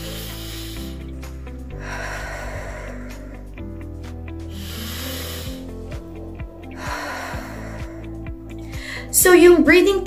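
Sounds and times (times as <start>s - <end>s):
woman breathing deeply: 0.0s - 9.2s
soft background music: 0.0s - 10.0s.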